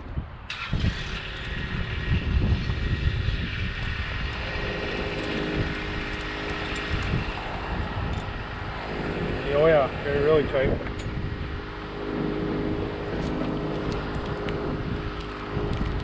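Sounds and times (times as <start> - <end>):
wind rumble on microphone: 0.0 - 16.0
boom lift power unit humming: 0.8 - 16.0.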